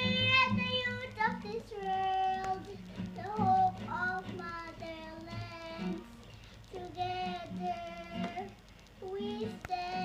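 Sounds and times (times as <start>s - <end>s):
boy singing: 0.0s - 10.0s.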